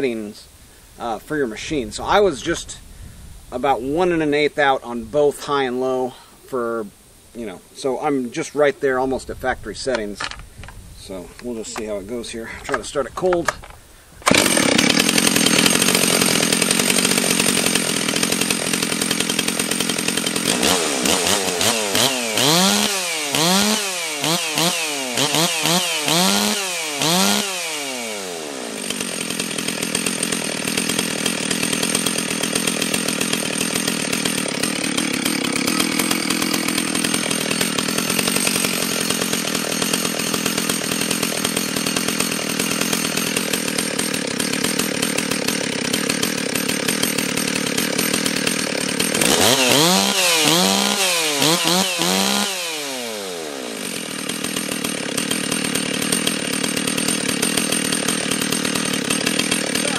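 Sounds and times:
chainsaw engine revving and idling: 11.0s - 59.9s.

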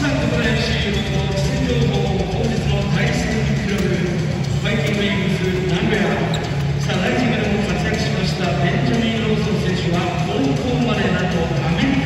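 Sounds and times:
amplified voice over loudspeakers: 0.0s - 12.0s
background music: 0.0s - 12.0s.

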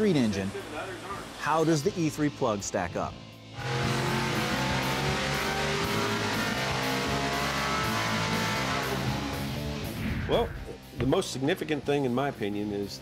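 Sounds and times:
rock music with electric guitar: 3.4s - 11.0s
car engine running hard: 3.6s - 9.8s.

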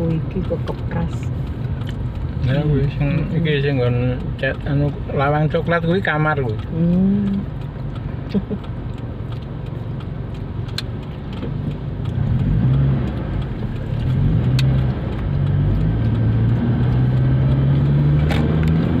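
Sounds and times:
car engine accelerating: 0.0s - 19.0s.

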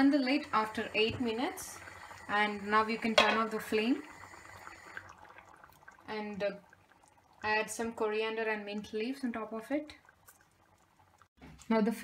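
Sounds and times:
curry simmering and bubbling: 0.0s - 12.0s.

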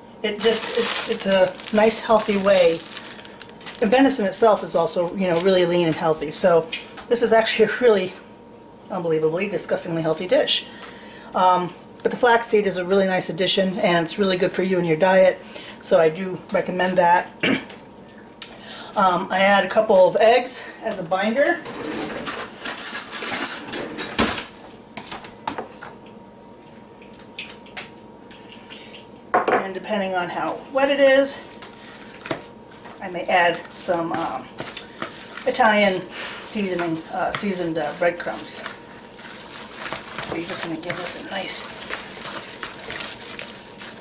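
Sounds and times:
rustling: 0.4s - 3.9s.

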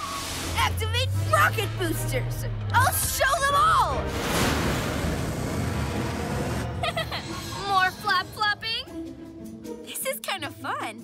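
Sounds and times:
background music: 0.0s - 11.0s
cartoon rocket thrusters rumble: 4.7s - 8.4s.

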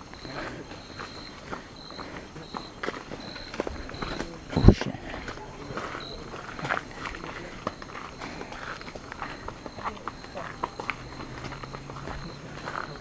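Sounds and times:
faint chatter: 0.0s - 13.0s
footsteps on dirt trail: 0.0s - 13.0s.

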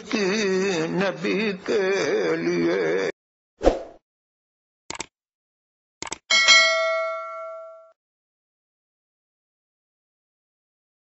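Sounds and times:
bright bell ding: 6.3s - 8.0s.

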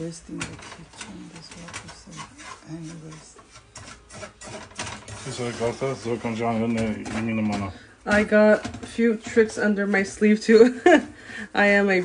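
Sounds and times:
wooden spatula scraping frying pan: 0.0s - 12.0s.

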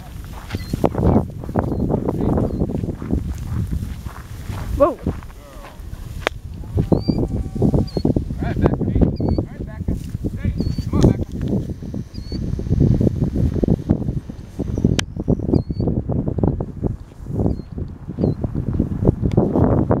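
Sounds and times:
footsteps rustling through dry grass: 0.0s - 8.8s, 9.6s - 19.0s
high bird chirps: 6.9s - 8.2s, 9.0s - 9.6s, 10.5s - 11.0s, 11.9s - 12.5s, 14.7s - 16.0s.

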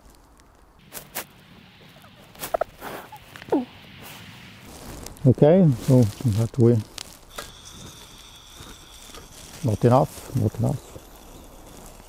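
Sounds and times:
crunches of packed snow: 0.0s - 12.0s.

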